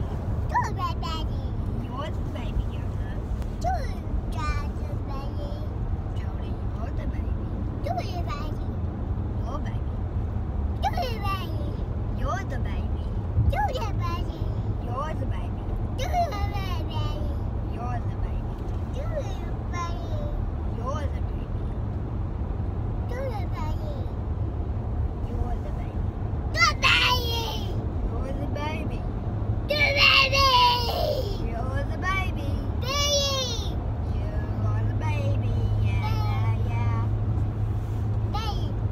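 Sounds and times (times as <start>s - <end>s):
road noise inside moving car: 0.0s - 38.9s
child's high-pitched voice: 3.6s - 5.8s, 10.8s - 12.3s, 13.5s - 14.6s, 18.9s - 20.4s, 23.1s - 24.2s, 26.6s - 27.8s, 29.7s - 37.1s, 38.3s - 38.8s.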